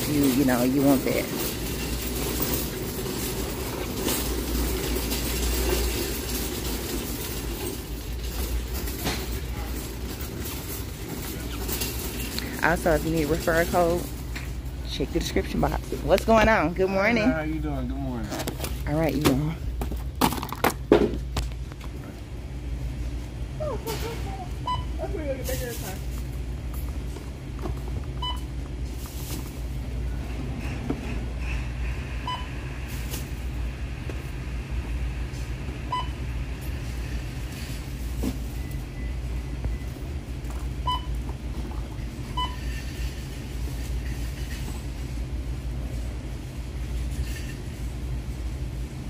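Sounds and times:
shopping cart rolling: 0.0 - 17.2, 23.8 - 48.6
barcode scanner beep: 42.3 - 42.8.

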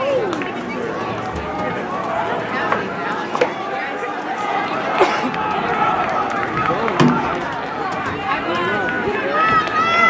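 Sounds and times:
crowd chatter and calls: 0.0 - 10.0.

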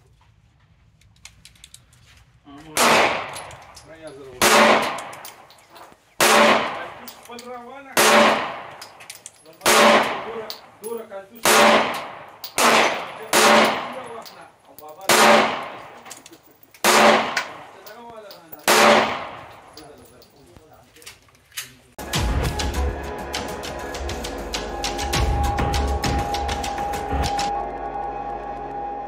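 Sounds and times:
pistol shot echoing: 2.7 - 3.8, 4.4 - 5.5, 6.2 - 7.1, 8.0 - 10.6, 11.4 - 14.1, 15.1 - 16.1, 16.8 - 17.9, 18.6 - 19.7.

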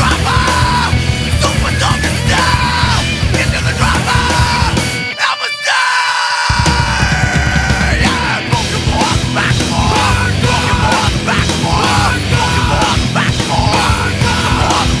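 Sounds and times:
distorted rock band music: 0.0 - 15.0
shouted vocals: 0.0 - 15.0.

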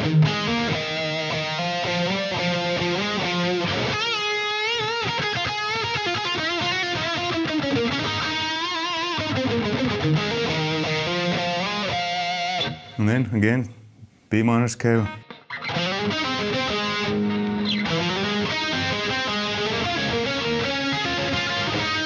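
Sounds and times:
overdriven electric guitar lead: 0.0 - 13.0, 15.1 - 22.0.

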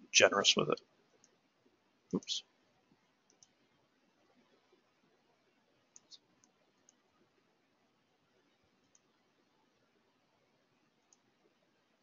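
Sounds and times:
faint computer mouse clicks: 3.2 - 3.6, 5.9 - 7.0, 8.8 - 9.1, 11.0 - 11.3.

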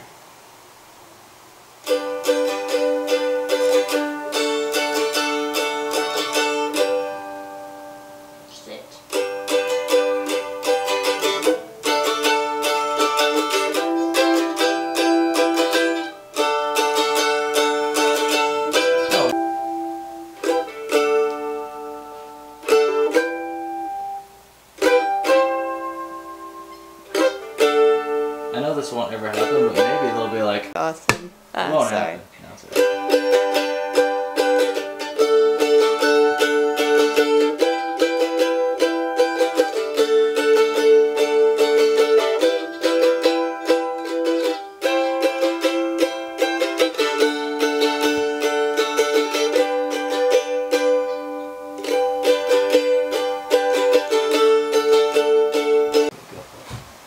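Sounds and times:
mandolin strumming rapid chords: 1.8 - 24.2, 24.8 - 30.8, 32.7 - 56.1.

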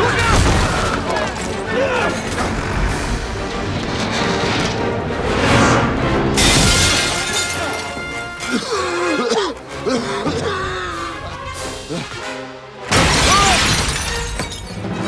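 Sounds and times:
crashing and shattering: 0.0 - 5.0, 6.4 - 8.6, 12.9 - 15.0
film music: 0.0 - 15.0.

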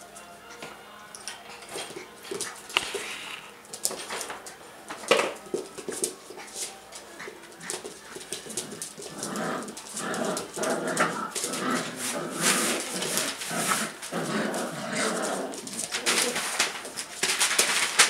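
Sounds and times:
paws scuffling and clicking on tile: 0.5 - 18.0
puppies growling in play: 1.5 - 4.4, 6.2 - 17.8.

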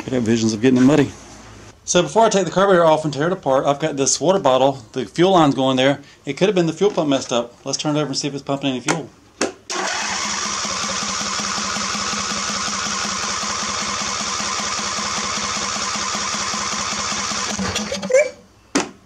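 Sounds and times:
electric starter cranking engine: 9.7 - 18.2.

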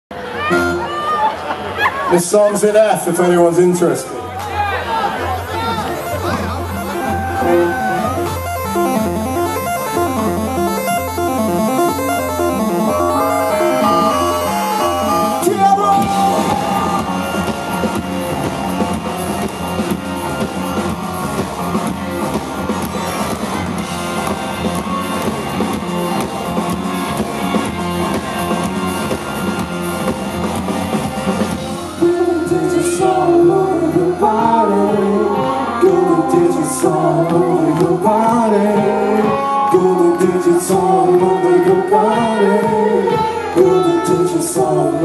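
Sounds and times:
electric guitars: 5.7 - 45.0
pulsing bass: 5.8 - 31.4
stepping keyboard line: 5.9 - 16.2
drums and cymbals: 13.0 - 32.2.

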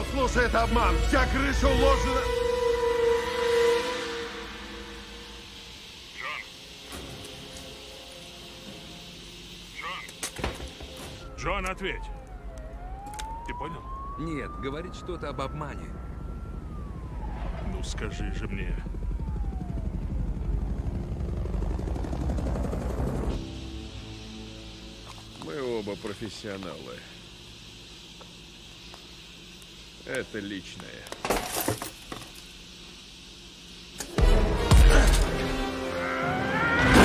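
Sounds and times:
faint hiss: 4.0 - 11.5, 23.4 - 34.2
helicopter rotors chopping: 5.8 - 24.3
whine falling in pitch: 11.1 - 26.3.

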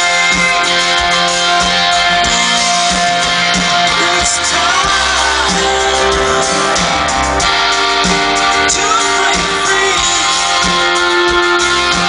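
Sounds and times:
electric guitar: 0.0 - 12.0
live rock band playing: 0.0 - 12.0.

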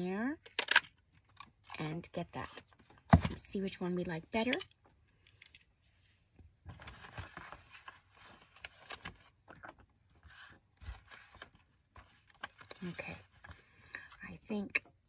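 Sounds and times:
paper rustling and crinkling: 6.6 - 13.8.

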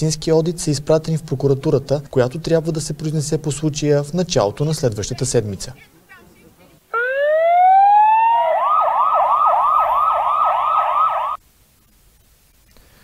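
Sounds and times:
electronic siren wailing and yelping: 6.9 - 11.4.

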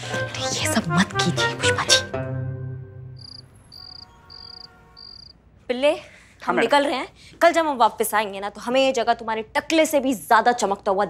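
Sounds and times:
cricket chirping: 3.2 - 5.3.

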